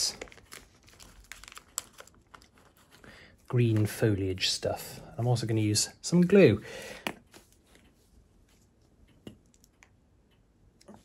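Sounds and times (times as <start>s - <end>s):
plastic packet crinkling: 0.0s - 4.0s.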